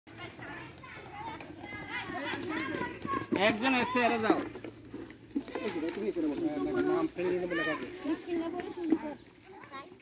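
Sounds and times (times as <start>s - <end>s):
children shouting: 0.1s - 4.4s.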